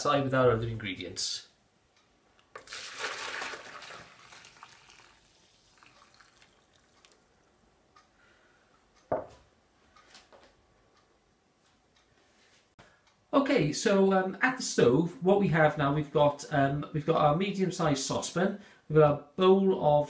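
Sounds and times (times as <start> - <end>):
liquid pouring into a jug: 2.5 - 7.5.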